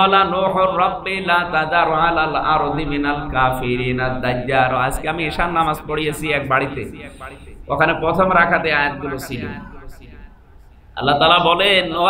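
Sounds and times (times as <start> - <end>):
man chanting a sermon: 0.0 - 10.3, 11.0 - 12.0.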